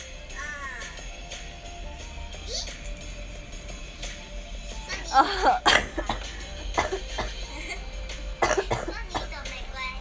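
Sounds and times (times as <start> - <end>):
background music from tablet speaker: 0.0 - 10.0
high-pitched sped-up girl's voice: 0.3 - 1.1, 2.4 - 2.8, 8.9 - 10.0.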